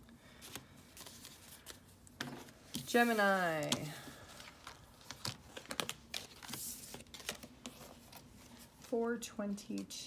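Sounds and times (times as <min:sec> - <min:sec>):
cards being shuffled: 0:00.4 - 0:08.9.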